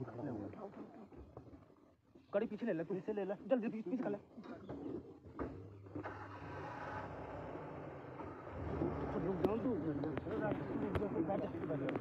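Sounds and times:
people talking: 0:09.1 - 0:12.0.

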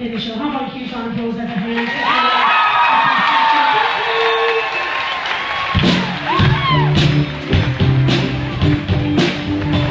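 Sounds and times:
audience applause and cheering: 0:01.7 - 0:09.9
live band playing: 0:05.4 - 0:09.9.

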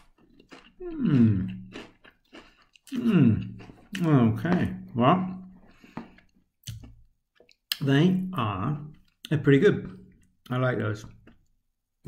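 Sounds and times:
crisp chewing crunches: 0:00.0 - 0:07.7.

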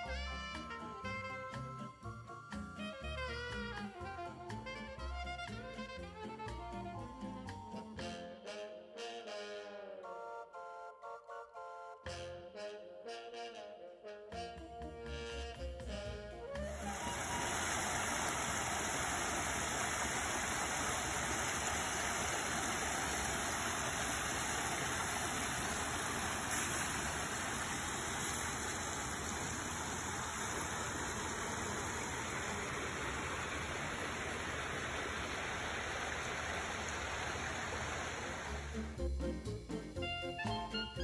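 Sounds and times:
creek flowing over rocks: 0:16.7 - 0:38.9.

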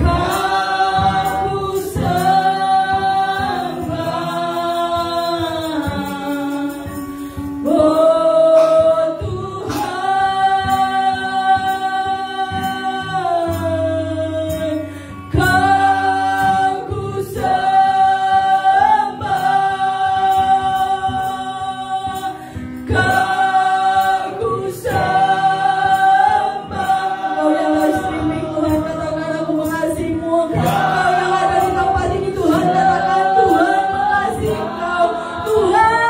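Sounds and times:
acoustic guitar: 0:00.0 - 0:36.0
woman singing into a microphone: 0:00.0 - 0:36.0.

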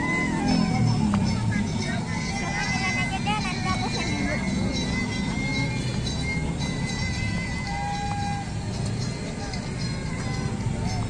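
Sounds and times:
music playing: 0:00.0 - 0:11.0
outdoor promenade rumble: 0:00.0 - 0:11.0.

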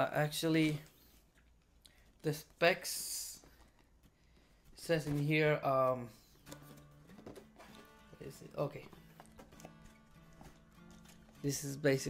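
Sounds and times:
faint background music: 0:05.0 - 0:12.0.

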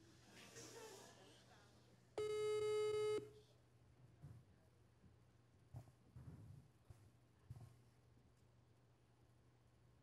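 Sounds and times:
phone ringback beep: 0:02.2 - 0:03.2.

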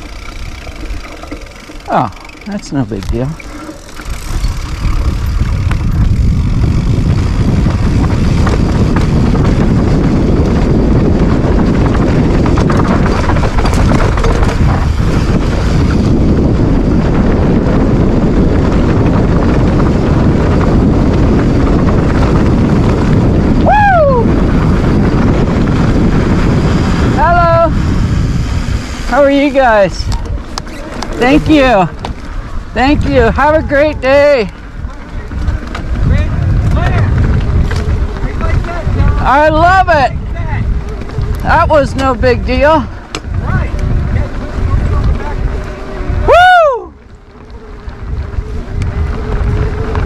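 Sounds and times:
tyres rumbling on dirt: 0:00.0 - 0:50.0
wind buffeting microphone: 0:00.0 - 0:50.0.

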